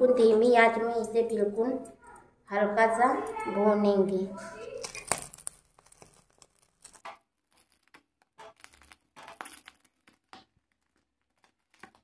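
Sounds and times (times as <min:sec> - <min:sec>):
skin crackling over gas flame: 0:04.5 - 0:12.0.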